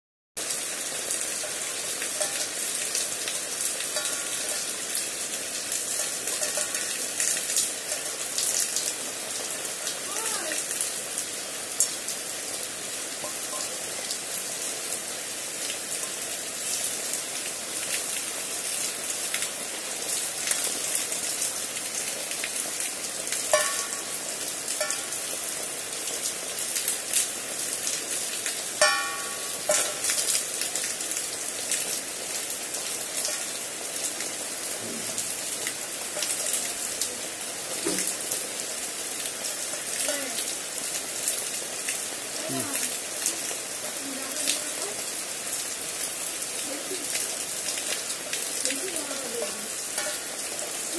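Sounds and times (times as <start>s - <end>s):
raindrops ticking on leaves: 0.4s - 50.9s
steady rain hiss: 0.4s - 50.9s.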